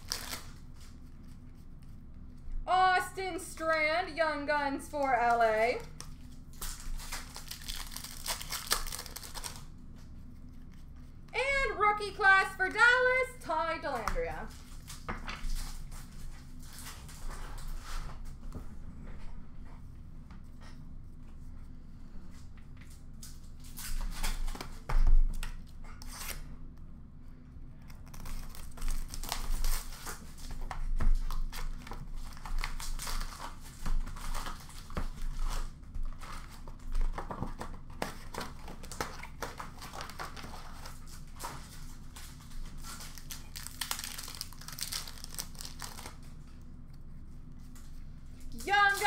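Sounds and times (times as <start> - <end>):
wrappers crinkling and tearing: 0.0 - 1.0, 5.2 - 9.8, 27.9 - 46.5.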